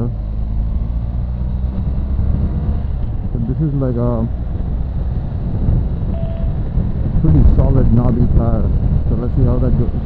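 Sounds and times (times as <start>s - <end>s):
motorcycle engine cruising: 0.0s - 10.0s
wind buffeting microphone: 1.2s - 10.0s
faint short steady tone: 6.1s - 6.6s.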